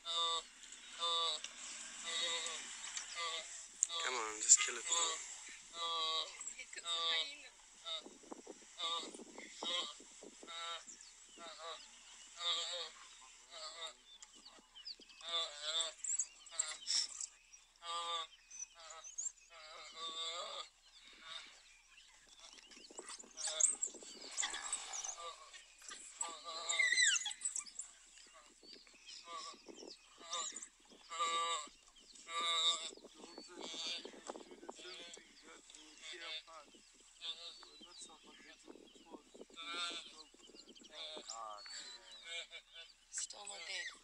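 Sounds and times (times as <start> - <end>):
high chirping calls: 21.9 - 32.2.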